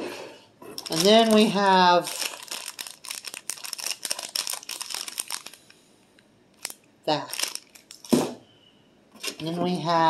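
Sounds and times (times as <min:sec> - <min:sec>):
plastic bag crinkling: 0:00.8 - 0:05.8, 0:06.6 - 0:08.2.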